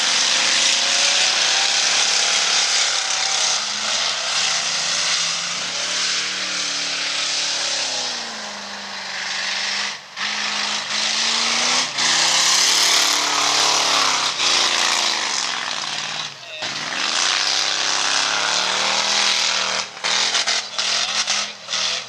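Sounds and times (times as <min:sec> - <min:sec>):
race car engines revving: 0:00.0 - 0:22.0.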